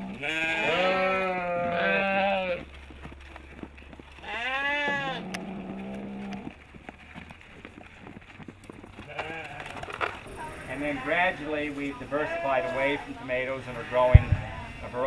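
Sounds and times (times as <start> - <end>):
sheep bleating: 0.0 - 2.7, 4.2 - 6.4, 9.0 - 15.0.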